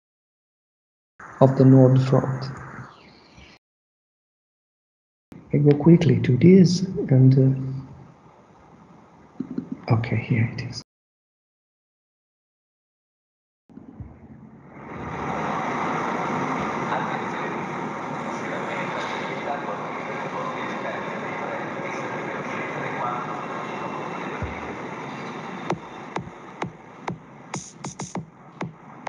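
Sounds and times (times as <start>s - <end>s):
city traffic noise: 14.4s - 29.0s
electronic music with clicking beats: 24.4s - 29.0s.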